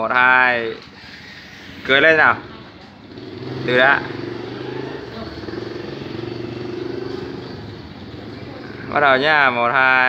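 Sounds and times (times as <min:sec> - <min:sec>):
vehicle engine running: 0:00.9 - 0:09.2.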